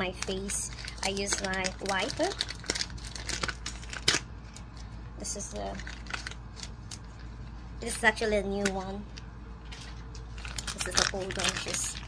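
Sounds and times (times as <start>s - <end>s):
plastic packet crinkling: 0.0s - 4.8s, 5.6s - 7.3s, 9.6s - 12.0s.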